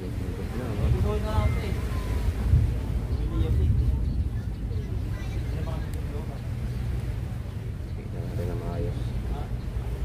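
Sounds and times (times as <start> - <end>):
faint voices: 0.0 - 10.0
wind rumbling on microphone: 0.0 - 10.0.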